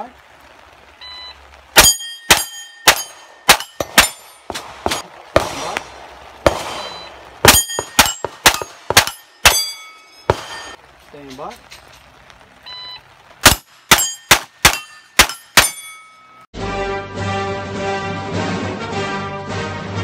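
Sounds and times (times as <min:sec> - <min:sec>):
steel plate ringing when hit: 0:01.8 - 0:04.5, 0:07.5 - 0:10.8, 0:13.5 - 0:16.4
rapid gunshots: 0:02.3 - 0:09.7.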